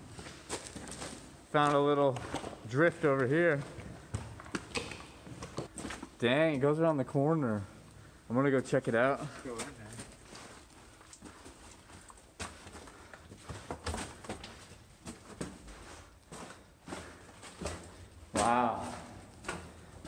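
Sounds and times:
footsteps on rock and rubble: 0.0 - 6.2, 9.2 - 20.0.

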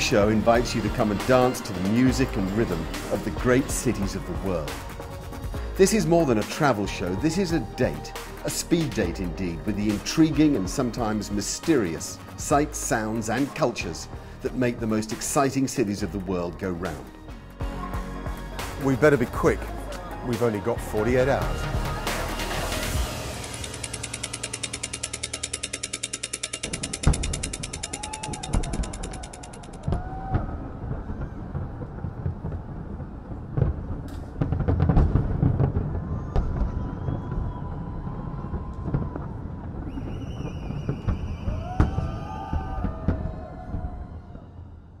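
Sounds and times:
rapid clock ticking: 23.3 - 29.9
fireworks booming and crackling: 29.8 - 44.1.

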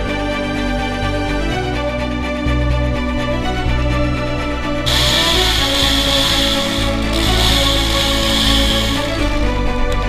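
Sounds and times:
background music: 0.0 - 10.0
chainsaw cutting: 4.9 - 9.3.

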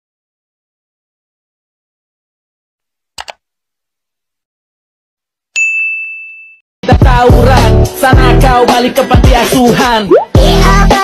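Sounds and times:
notification bell ding: 5.6 - 6.6
bass-heavy remix music with singing: 6.8 - 11.0.

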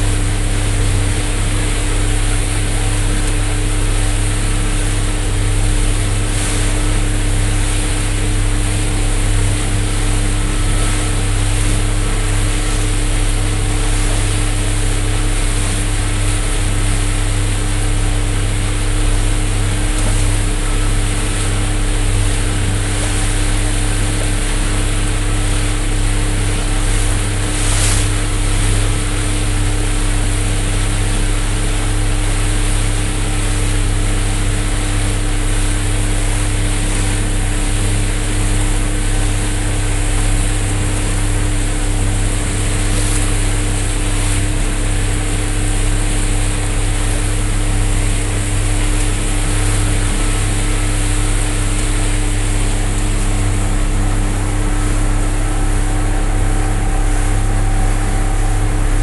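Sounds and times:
boat motor droning: 0.0 - 59.0
water rushing past hull: 0.0 - 59.0.

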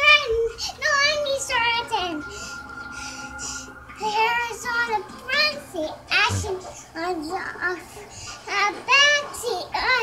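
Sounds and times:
girl singing: 0.0 - 2.5, 3.4 - 10.0.

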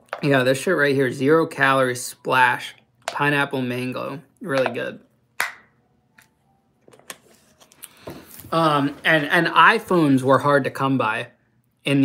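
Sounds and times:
plastic bottle popping: 5.4 - 5.7.

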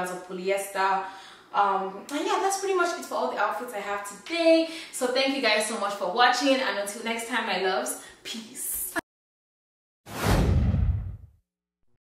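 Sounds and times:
whoosh sound effect: 10.1 - 11.3
low rumble: 10.2 - 11.3.

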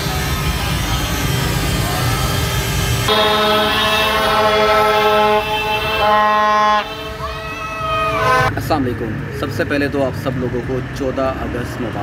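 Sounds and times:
crowd: 0.0 - 6.0, 6.8 - 12.0
motorcycle engines: 0.0 - 12.0
plastic toy trumpets blaring: 2.4 - 7.4, 8.0 - 8.5.

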